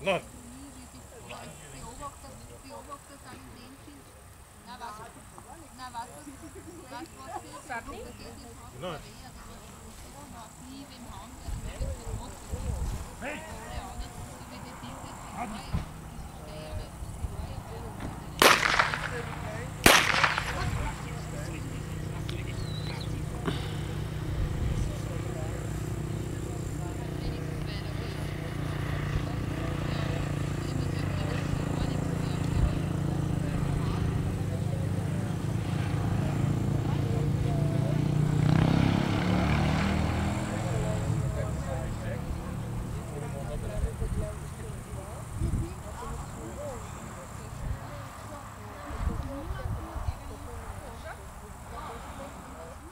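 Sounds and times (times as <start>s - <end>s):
blank pistol shots echoing: 18.4s - 21.1s.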